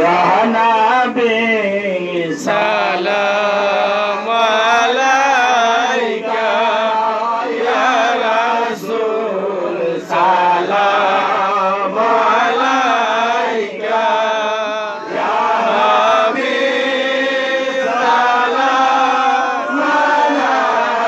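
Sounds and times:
men chanting into microphones: 0.0s - 21.0s.

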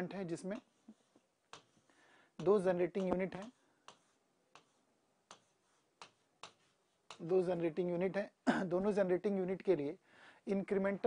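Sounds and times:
stylus tapping on drawing tablet: 1.5s - 1.8s, 2.4s - 7.4s.

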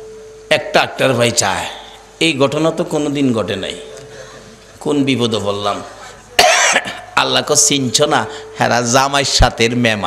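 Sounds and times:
man speaking: 0.5s - 6.4s, 7.0s - 10.0s
man coughing: 6.1s - 7.2s.

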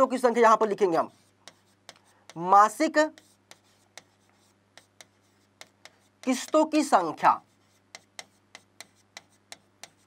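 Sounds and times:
stylus tapping on screen: 3.1s - 6.8s, 7.8s - 10.0s.

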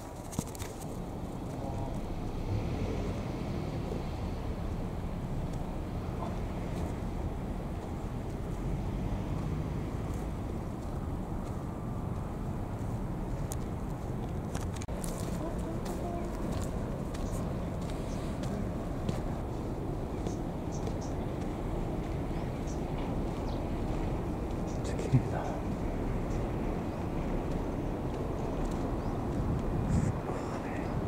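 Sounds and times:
steady low rumble: 0.9s - 31.0s.

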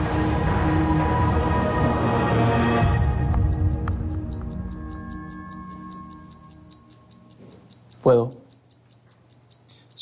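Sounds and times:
dramatic underscore music: 0.0s - 7.4s
wristwatch ticking: 2.9s - 10.0s.

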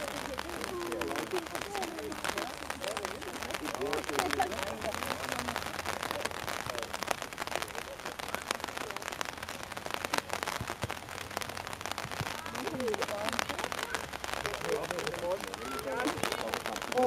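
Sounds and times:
distant voices: 0.0s - 17.0s
microphone crackling: 0.0s - 17.0s.

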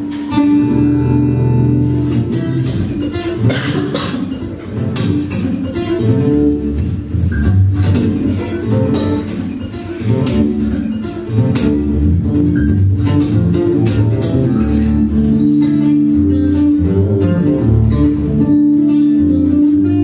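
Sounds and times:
percussive hits on guitar strings: 0.0s - 15.1s
fingerstyle acoustic guitar: 0.0s - 20.0s.

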